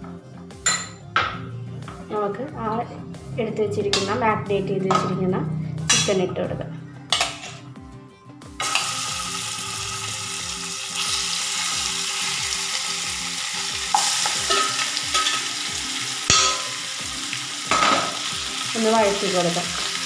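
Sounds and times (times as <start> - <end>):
chicken sizzling in hot oil: 8.6 - 20.0.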